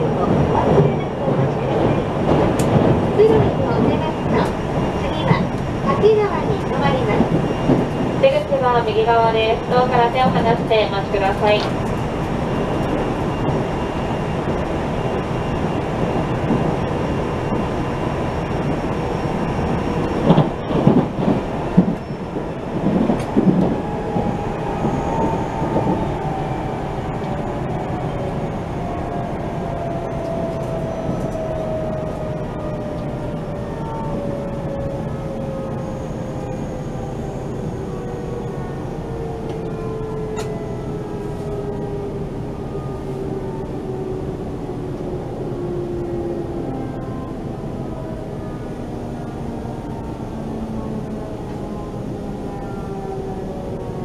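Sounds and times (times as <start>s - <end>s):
train rolling rumble: 0.0s - 54.0s.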